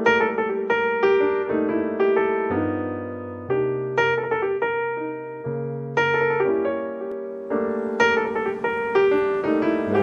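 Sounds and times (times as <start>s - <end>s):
piano melody: 0.0s - 10.0s.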